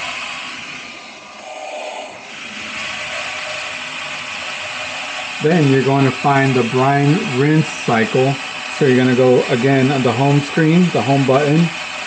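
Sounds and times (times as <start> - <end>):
valve motor and gears running: 0.0 - 12.0.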